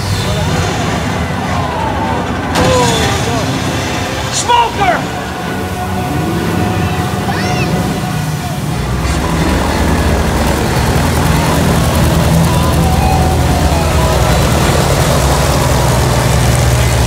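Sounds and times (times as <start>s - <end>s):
motorboat engine droning: 0.0s - 17.0s
water spraying: 2.6s - 17.0s.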